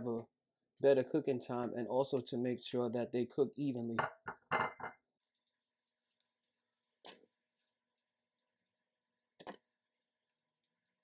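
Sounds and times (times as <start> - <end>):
fork clinking on ceramic plate: 4.5 - 4.9.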